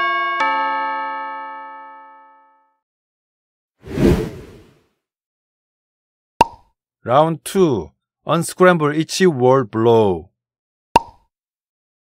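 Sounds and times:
two-note bell-like chime: 0.0s - 2.6s.

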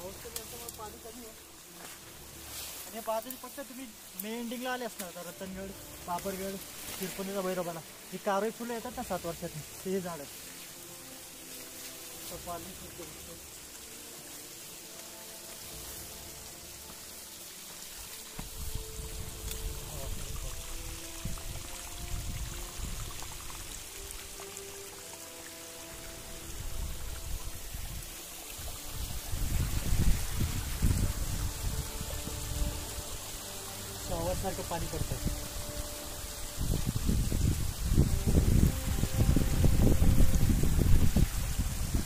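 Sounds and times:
waterfall rushing: 0.0s - 42.0s.

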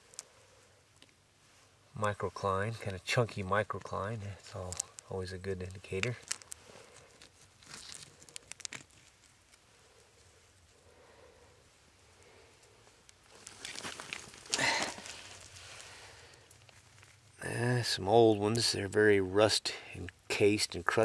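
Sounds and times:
small clicks and rustles: 0.0s - 1.2s, 2.8s - 10.8s, 12.0s - 17.4s
hands scraping soil and rocks: 2.0s - 10.6s, 13.2s - 17.8s.

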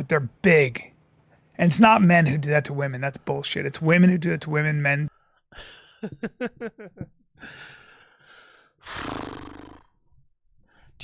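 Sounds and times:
person laughing: 5.6s - 7.1s
breathy exhales: 7.4s - 9.6s.

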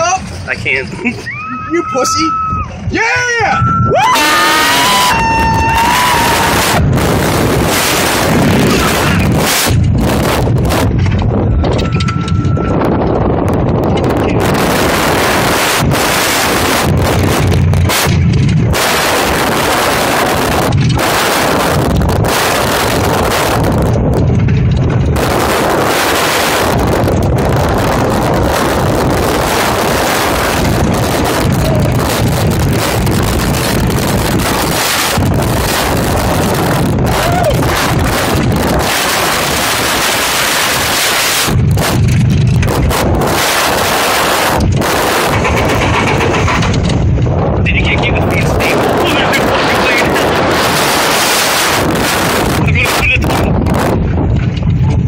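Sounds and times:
roller coaster train rumbling: 0.0s - 55.0s
wind rushing over microphone: 0.0s - 55.0s.

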